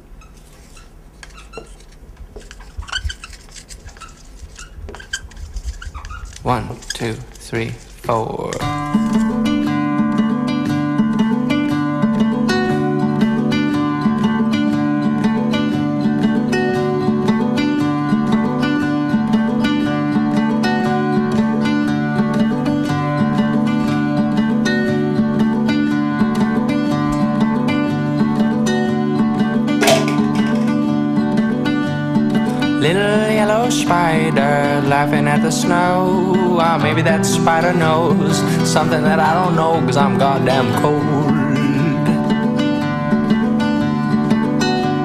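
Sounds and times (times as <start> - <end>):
acoustic guitar plucking: 6.0 - 45.0.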